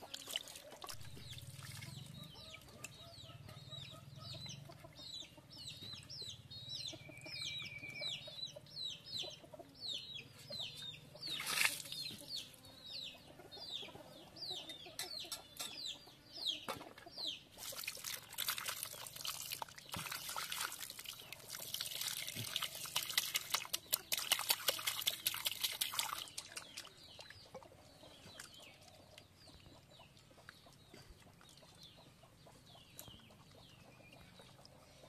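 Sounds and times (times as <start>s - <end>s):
chicks peeping: 1.2s - 17.6s, 26.2s - 35.0s.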